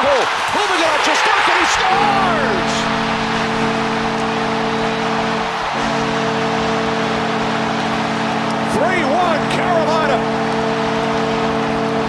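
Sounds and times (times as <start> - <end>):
crowd cheering: 0.0 - 12.0
arena goal horn: 1.4 - 12.0.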